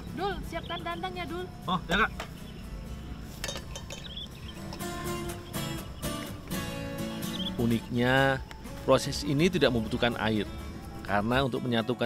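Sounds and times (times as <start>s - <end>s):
instrumental music with held notes: 0.0s - 12.0s
low outdoor background: 0.0s - 12.0s.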